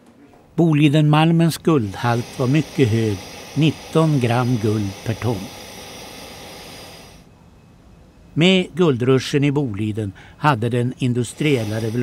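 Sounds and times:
soundtrack hiss: 0:00.0 - 0:12.0
faint steady high tones: 0:00.2 - 0:12.0.

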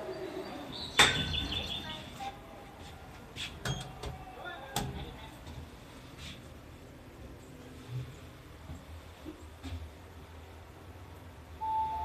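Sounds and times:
elevator hum: 0:00.0 - 0:12.0
elevator arrival chime: 0:11.6 - 0:12.0.

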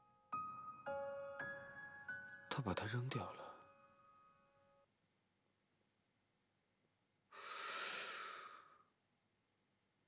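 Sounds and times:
man breathing out forcefully: 0:07.4 - 0:08.8.

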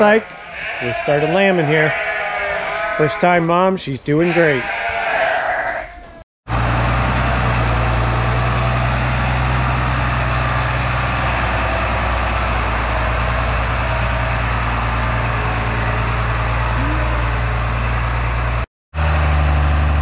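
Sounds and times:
tractor diesel engine droning: 0:00.0 - 0:02.1, 0:06.5 - 0:20.0.

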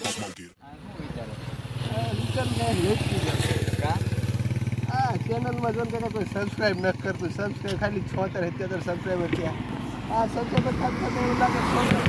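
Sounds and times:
voices talking: 0:00.0 - 0:12.0
motorcycle engine running: 0:01.2 - 0:08.5.

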